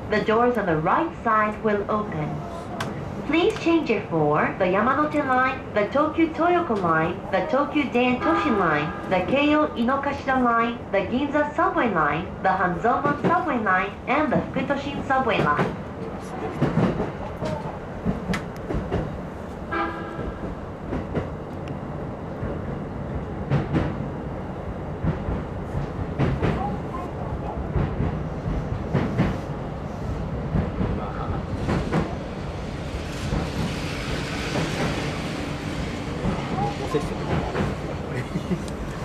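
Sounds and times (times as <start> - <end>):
train rumbling: 0.0 - 39.0.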